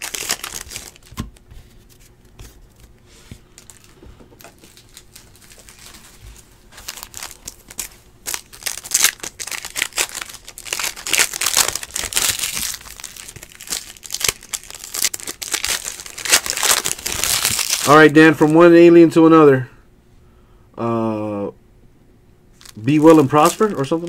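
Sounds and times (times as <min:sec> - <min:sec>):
cards and foil wrappers crinkling: 0:00.0 - 0:18.7, 0:22.5 - 0:24.0.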